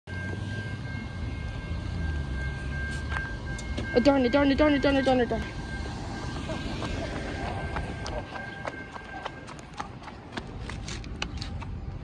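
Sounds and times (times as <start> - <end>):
high-pitched tone: 0.1 - 10.1
distant train rumbling: 0.1 - 12.0.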